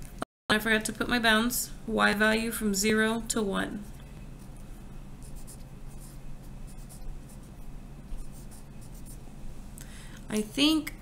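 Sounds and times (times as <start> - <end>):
pen scratching on paper: 5.2 - 9.2.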